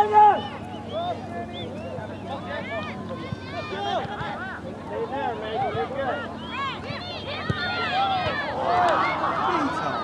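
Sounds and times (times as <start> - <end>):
spectators and players calling out: 0.0 - 10.0.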